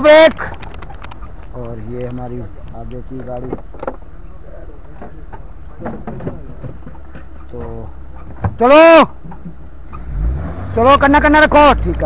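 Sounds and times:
engine and road rumble: 0:00.0 - 0:12.0
knocks and rattles from bumps: 0:00.1 - 0:04.1, 0:04.8 - 0:09.6.

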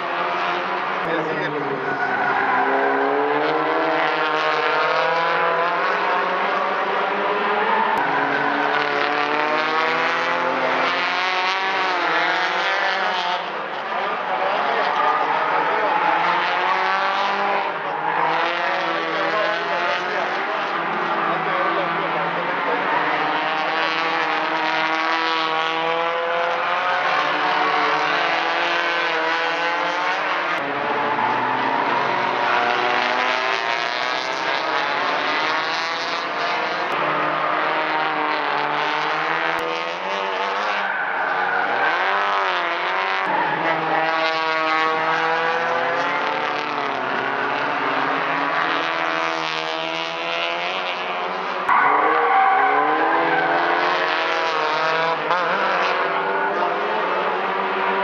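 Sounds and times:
racing car engines revving: 0:00.0 - 0:58.0.

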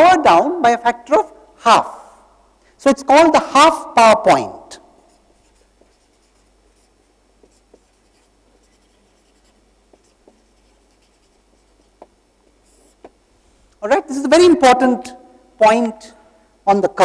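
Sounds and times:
marker writing on paper: 0:05.0 - 0:13.2.

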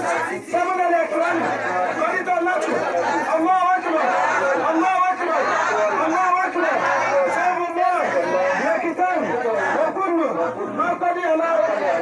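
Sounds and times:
other voices: 0:00.0 - 0:12.0
man talking into a microphone: 0:00.3 - 0:12.0.

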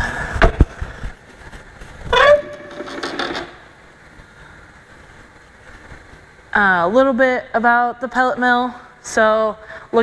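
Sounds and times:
metallic scraping and rattling: 0:02.4 - 0:03.6.

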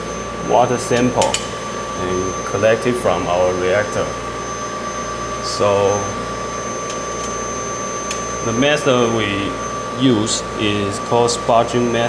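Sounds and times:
machine fans and pumps whirring: 0:00.0 - 0:12.0.

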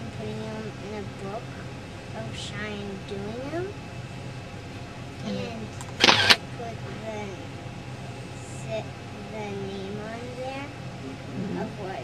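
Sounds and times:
girl speaking softly: 0:00.0 - 0:03.8, 0:05.2 - 0:05.8, 0:06.6 - 0:07.5, 0:08.4 - 0:12.0.

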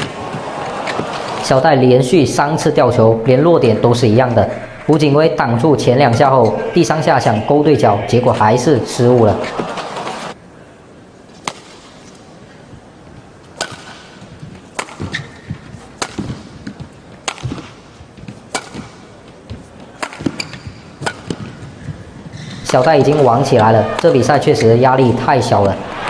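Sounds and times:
rackets striking shuttlecock: 0:11.4 - 0:11.9, 0:13.6 - 0:19.0, 0:19.8 - 0:21.6.

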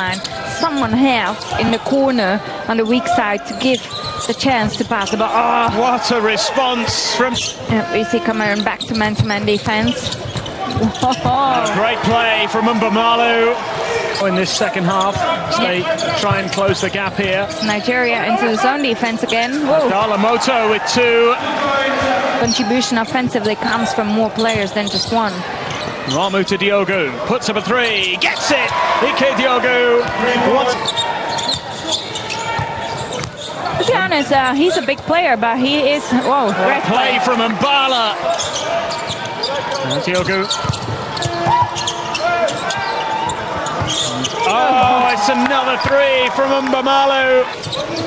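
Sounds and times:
crowd voices din: 0:00.0 - 0:48.0
sports commentary: 0:00.0 - 0:48.0
basketball dribbled on court: 0:08.4 - 0:11.7, 0:30.9 - 0:34.2, 0:39.8 - 0:45.2.

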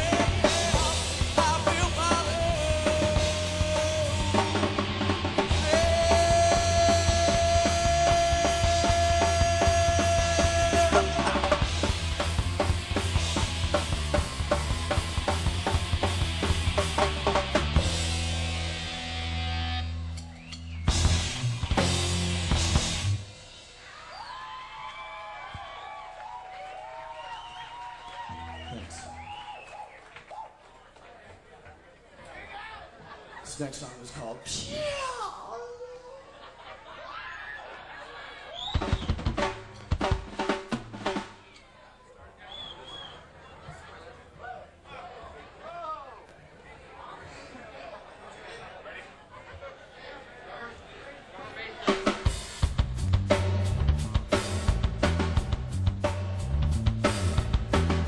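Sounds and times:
person singing: 0:00.0 - 0:04.7, 0:05.5 - 0:11.6
live rock band playing: 0:00.0 - 0:23.9, 0:38.7 - 0:41.6, 0:51.8 - 0:58.0
crowd noise and voices: 0:00.0 - 0:58.0.

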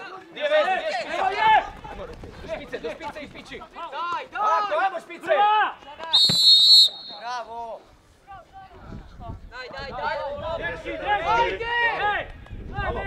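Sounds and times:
referee's whistle blast: 0:06.1 - 0:07.4.

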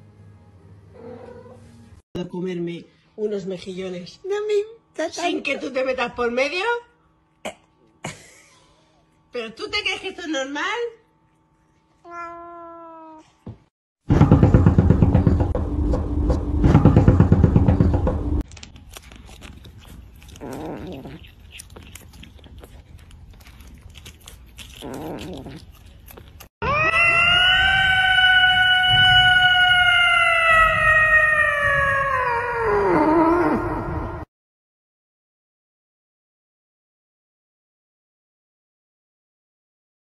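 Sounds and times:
cat meowing: 0:12.0 - 0:13.4, 0:26.6 - 0:33.4
long loud cat yowl: 0:26.6 - 0:34.2.

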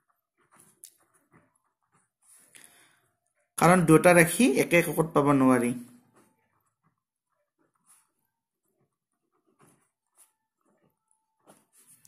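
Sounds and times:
pen scratching on paper: 0:06.1 - 0:12.0.

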